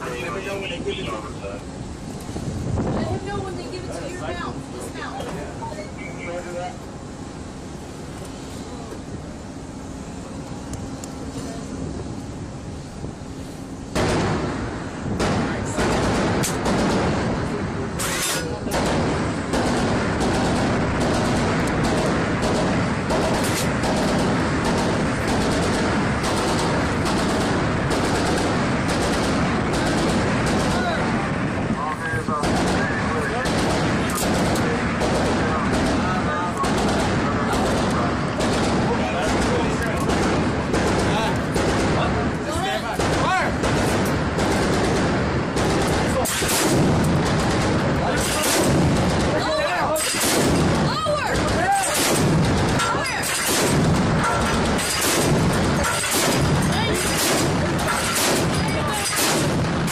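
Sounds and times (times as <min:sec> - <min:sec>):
steady background noise: 0:00.0 - 0:59.9
deck guns firing: 0:13.9 - 0:14.6, 0:15.2 - 0:17.4, 0:18.7 - 0:31.1, 0:32.4 - 0:59.9.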